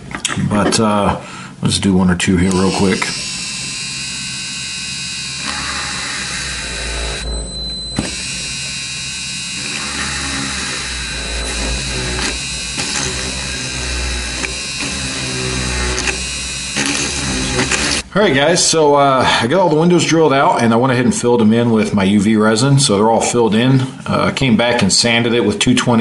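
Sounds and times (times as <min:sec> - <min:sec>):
rotary tool whining: 0:02.4 - 0:18.1.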